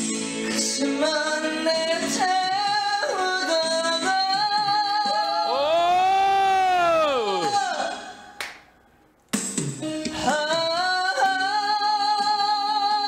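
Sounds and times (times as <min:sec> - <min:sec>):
backing track music: 0:00.0 - 0:13.0
person singing: 0:00.1 - 0:08.4, 0:10.0 - 0:13.0.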